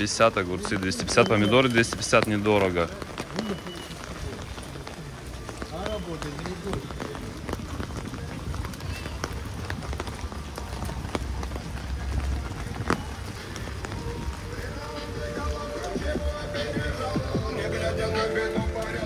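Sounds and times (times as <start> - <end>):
person's voice: 0.0 - 3.5
footsteps in rain: 0.0 - 19.0
rain on paving and awnings: 0.0 - 19.0.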